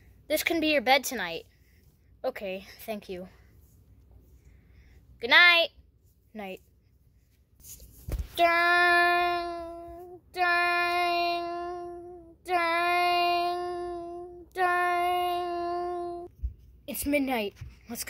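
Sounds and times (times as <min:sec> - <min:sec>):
child singing long notes: 0:08.4 - 0:16.3.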